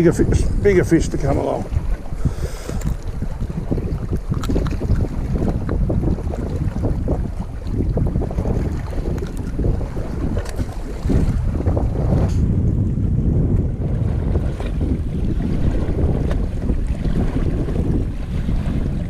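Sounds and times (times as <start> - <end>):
shallow water washing: 0.0 - 19.0
wind buffeting microphone: 0.0 - 19.0.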